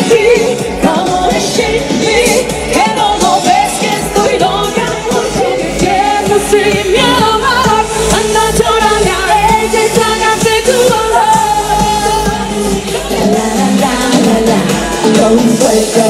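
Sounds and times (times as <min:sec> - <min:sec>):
live pop band: 0:00.0 - 0:16.0
women singing: 0:00.0 - 0:16.0.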